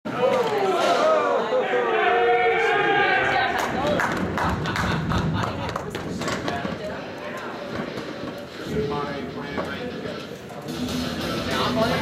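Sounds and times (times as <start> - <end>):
voices in indoor rink: 0.1 - 12.0.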